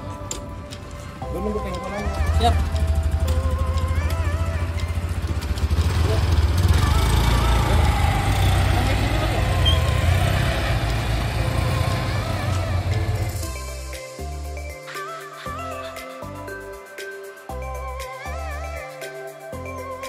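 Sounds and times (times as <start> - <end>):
music with sung melody: 0.0 - 20.0
motor scooters pulling away: 0.6 - 13.5.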